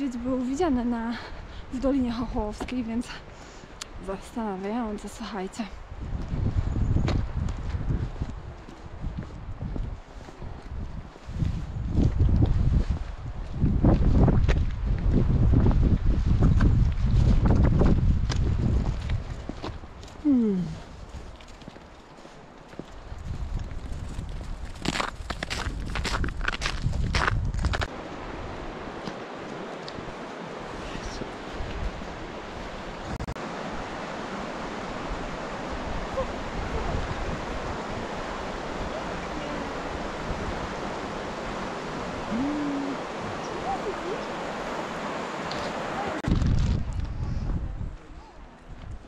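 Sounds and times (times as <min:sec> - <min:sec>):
stream rushing over stones: 0:27.8 - 0:46.8.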